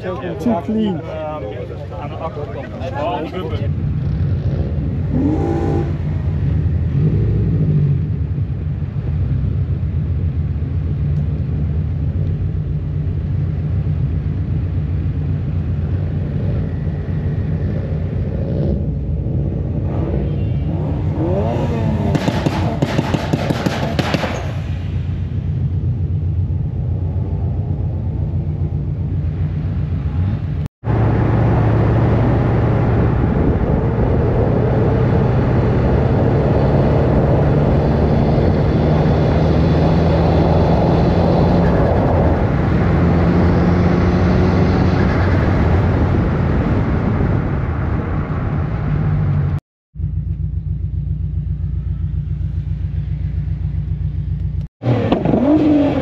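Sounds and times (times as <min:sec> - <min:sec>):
car engine droning: 0:00.0 - 0:56.0.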